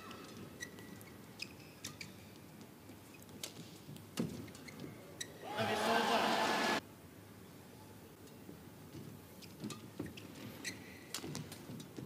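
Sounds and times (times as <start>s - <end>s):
arena noise: 5.4s - 6.8s
player shouting: 5.4s - 6.8s.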